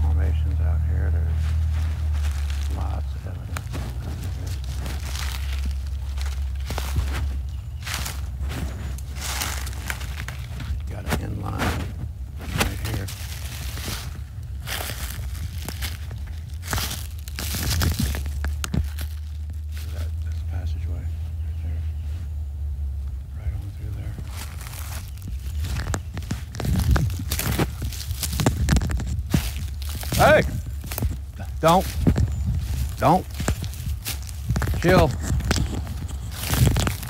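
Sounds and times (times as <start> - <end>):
footsteps crunching through dry leaves: 0.0 - 22.2, 23.8 - 37.0
low microphone rumble: 0.0 - 37.0.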